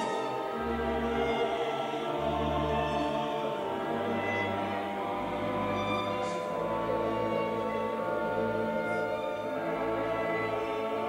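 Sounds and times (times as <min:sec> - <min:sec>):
choir singing sustained notes: 0:00.0 - 0:11.0
orchestra playing sacred music: 0:00.0 - 0:11.0.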